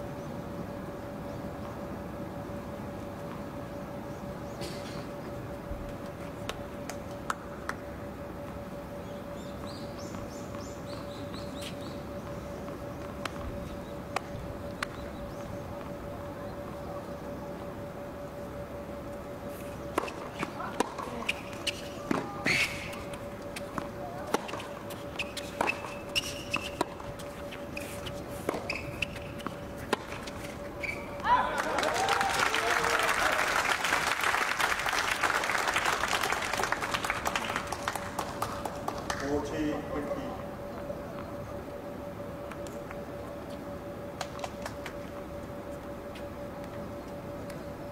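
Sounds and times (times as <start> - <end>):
faint steady hum: 0.0 - 47.9
shoe squeaks: 21.1 - 23.7, 24.4 - 31.2
applause: 31.5 - 39.2.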